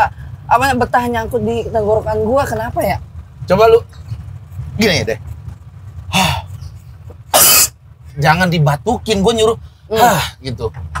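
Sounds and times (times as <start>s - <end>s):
man coughing: 7.3s - 7.7s.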